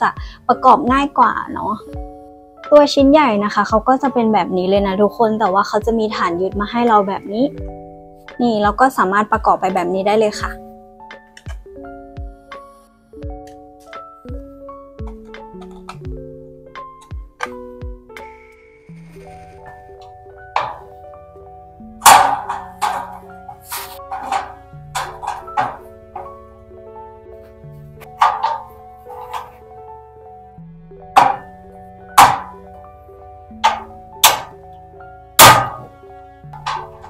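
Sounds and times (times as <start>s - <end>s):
soft background music: 0.0s - 37.0s
plastic pieces knocking on pegboard: 15.0s - 16.1s, 20.0s - 21.0s, 22.0s - 26.4s, 28.0s - 29.6s, 31.2s - 31.5s, 32.2s - 32.6s, 33.6s - 34.6s, 35.4s - 36.0s
plastic hooks clicking into pegboard: 22.1s - 26.3s.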